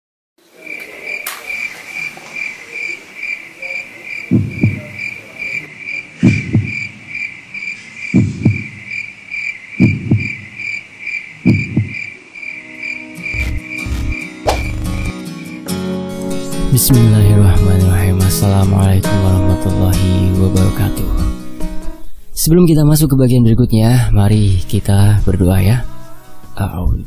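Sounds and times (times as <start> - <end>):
crickets chirping: 0.4 - 18.6
low double thumps: 4.3 - 5.1, 6.2 - 7.0, 8.1 - 8.9, 9.8 - 10.6, 11.4 - 12.1, 13.3 - 15.2
music: 12.7 - 22.0, 24.4 - 27.0.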